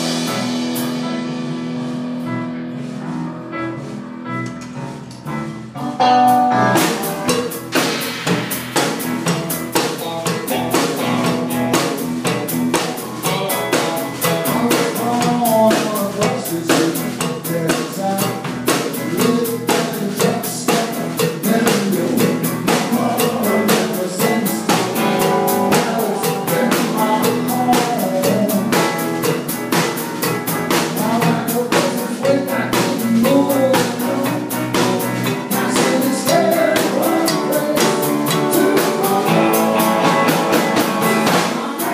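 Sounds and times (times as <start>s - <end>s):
electric guitar line: 0.0s - 15.4s, 20.2s - 41.9s
bass: 0.0s - 41.9s
drum kit with snare rimshots: 0.0s - 41.9s.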